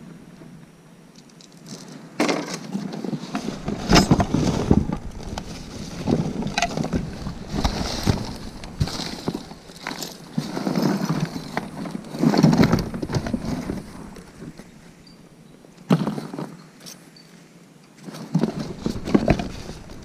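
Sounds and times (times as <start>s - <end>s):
items knocking and clattering: 2.2s - 14.7s, 18.4s - 20.0s
hands rummaging through cardboard box: 3.0s - 14.8s.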